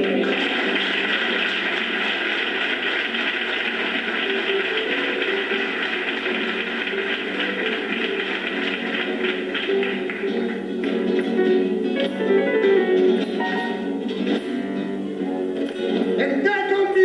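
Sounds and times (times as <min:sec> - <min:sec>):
audience applauding on television: 0:00.0 - 0:11.4.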